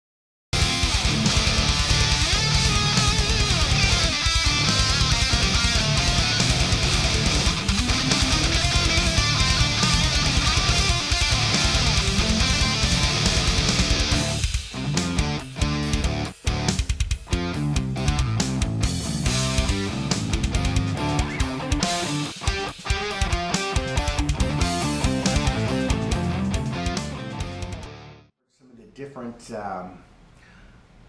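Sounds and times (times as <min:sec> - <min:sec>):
drum backing track: 0:00.6 - 0:27.8
distorted electric guitar riffing: 0:00.6 - 0:28.3.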